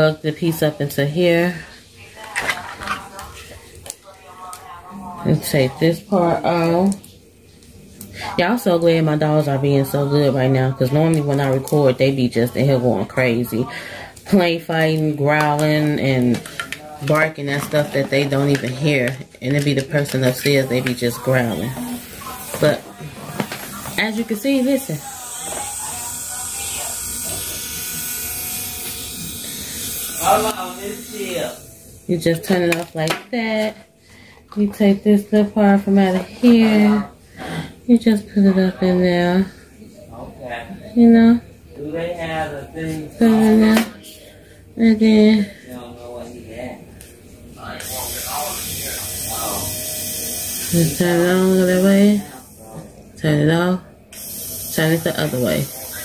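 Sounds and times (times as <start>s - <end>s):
electric nail drill whirring: 23.8s - 31.6s, 47.8s - 52.5s, 54.1s - 56.0s.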